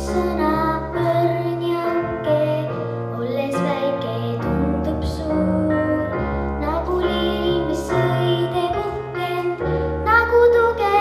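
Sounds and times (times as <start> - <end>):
girl singing into a microphone: 0.0 - 11.0.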